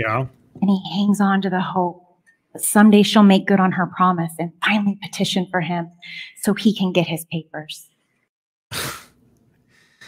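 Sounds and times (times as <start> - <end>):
person's noisy burst of breath: 8.7 - 10.0.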